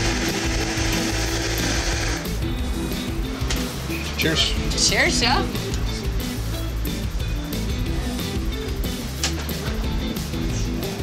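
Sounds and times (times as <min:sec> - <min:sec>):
blender running: 0:00.0 - 0:02.4.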